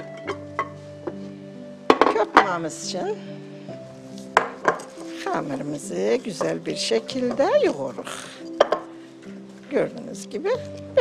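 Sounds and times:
background music with held notes: 0:00.0 - 0:11.0
kitchen items knocking on counter: 0:01.9 - 0:02.5, 0:04.4 - 0:05.0, 0:08.6 - 0:08.9.

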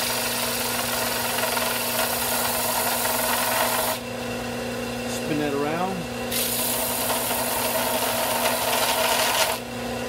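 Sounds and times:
wood being sanded: 0:00.0 - 0:04.0, 0:06.3 - 0:09.6
sander motor hum: 0:00.0 - 0:10.0.

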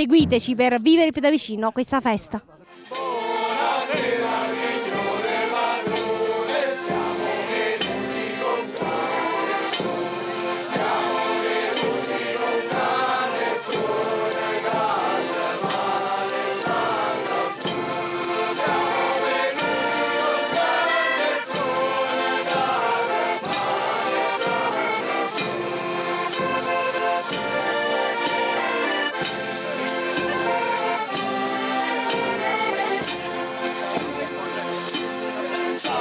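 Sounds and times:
bass drum steady beat: 0:00.0 - 0:00.6
button accordions playing: 0:02.7 - 0:36.0
group singing together: 0:02.8 - 0:36.0.

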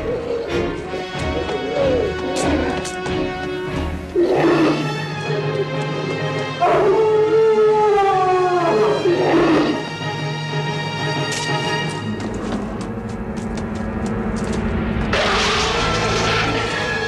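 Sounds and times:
eerie low drone score: 0:00.0 - 0:17.0
werewolf howls: 0:04.1 - 0:05.7, 0:06.6 - 0:09.9, 0:15.1 - 0:17.0.

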